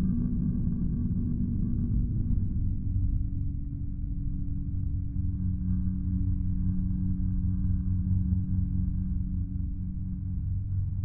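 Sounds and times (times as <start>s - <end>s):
steady low drone tone: 0.0s - 11.0s.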